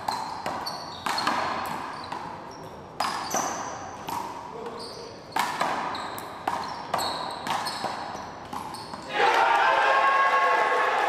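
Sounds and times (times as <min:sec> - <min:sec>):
sneakers squeaking on court: 0:00.0 - 0:09.1
onlookers shouting: 0:09.1 - 0:11.0.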